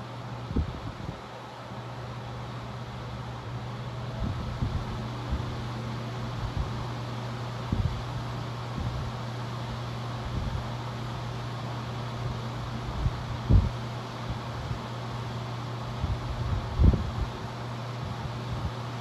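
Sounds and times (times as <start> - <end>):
airflow buffeting microphone: 0.0 - 19.0
electric fan humming: 0.0 - 19.0.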